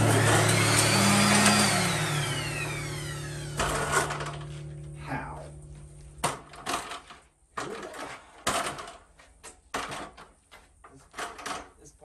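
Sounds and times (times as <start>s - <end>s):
electric sander winding down: 0.0s - 5.0s.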